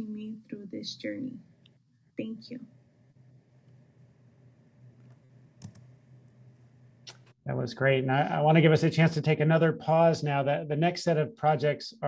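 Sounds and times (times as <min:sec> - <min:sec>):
faint low hum: 0:04.7 - 0:12.0
soft clicks: 0:05.0 - 0:07.3.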